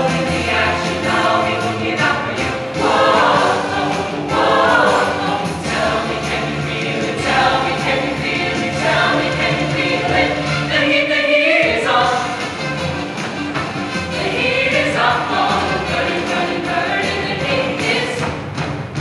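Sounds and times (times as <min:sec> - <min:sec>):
mixed choir singing in harmony: 0:00.0 - 0:18.4.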